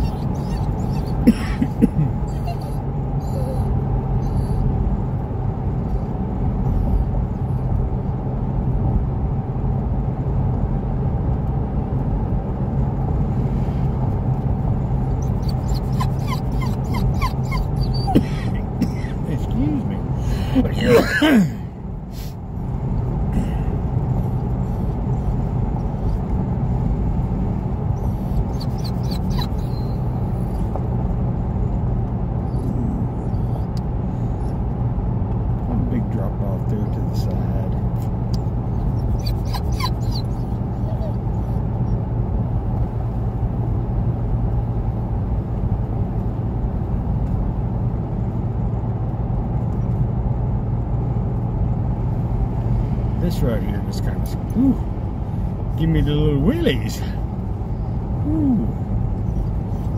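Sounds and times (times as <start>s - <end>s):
engine and tyre drone: 0.0s - 59.9s.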